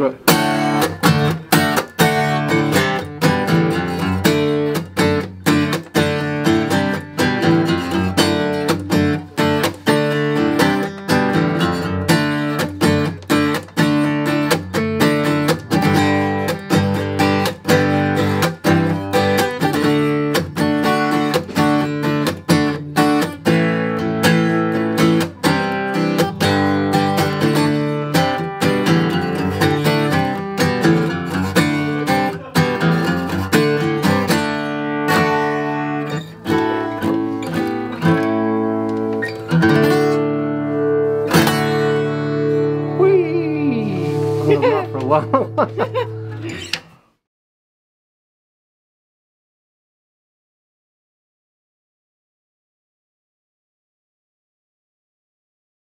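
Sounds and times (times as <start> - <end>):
acoustic guitar strummed hard: 0.2 - 43.2, 43.8 - 46.9.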